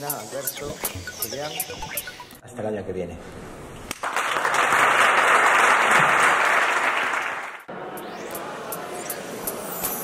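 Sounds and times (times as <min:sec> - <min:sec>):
audience applauding: 0:03.9 - 0:07.7.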